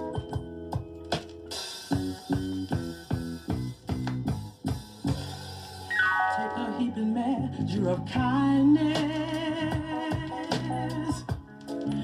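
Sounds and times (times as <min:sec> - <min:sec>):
steady drum beat: 0:00.2 - 0:05.6
low bass line: 0:06.5 - 0:09.8.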